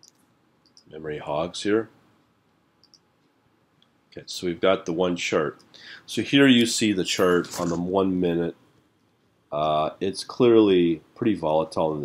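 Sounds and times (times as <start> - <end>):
computer mouse clicks: 2.8 - 3.4.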